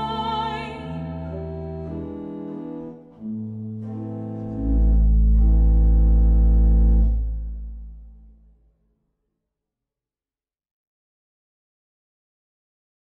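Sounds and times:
pipe organ chords: 0.0s - 8.6s
deep organ pedal bass note: 1.3s - 8.5s.

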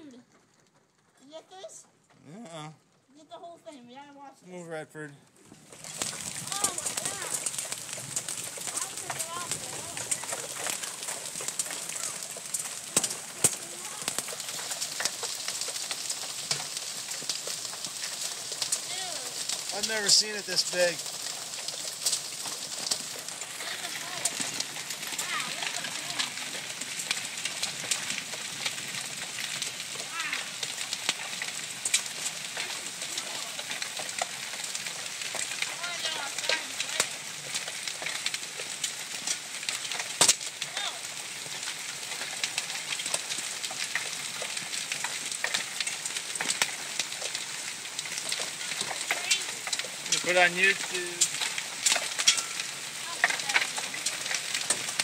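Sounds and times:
hail and rain falling: 0.0s - 55.0s
hailstones clicking: 0.0s - 55.0s
loud crack: 5.6s - 55.0s.

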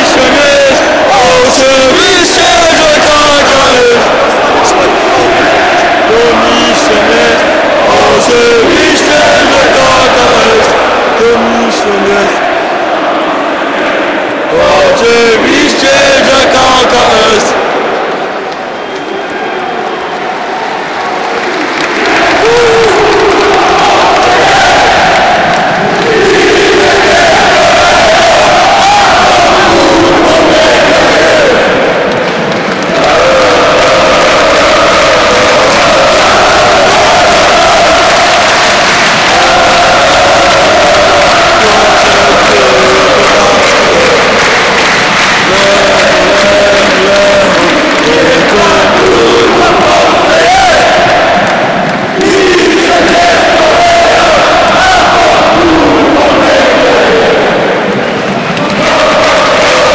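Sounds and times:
crowd chanting and singing: 0.0s - 59.9s.

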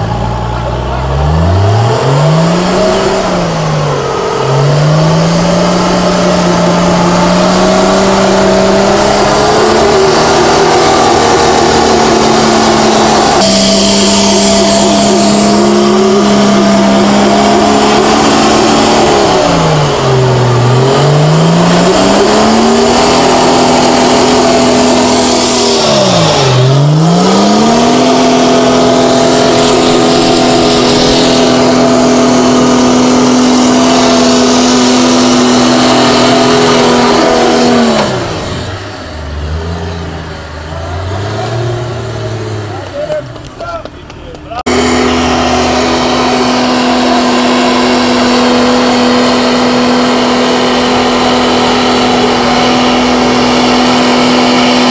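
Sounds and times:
diesel truck engine revving hard: 0.0s - 43.6s, 44.6s - 54.9s.

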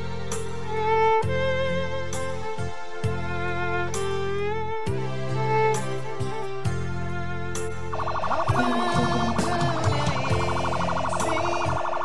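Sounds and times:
background music: 0.0s - 12.0s
electronic siren warbling: 7.9s - 12.0s.

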